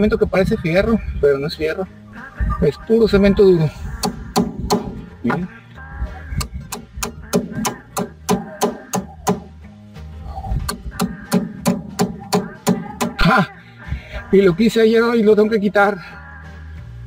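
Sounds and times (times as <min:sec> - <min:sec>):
background music: 0:00.0 - 0:17.0
hammer striking chisel on cement: 0:06.7 - 0:09.5, 0:10.7 - 0:13.2.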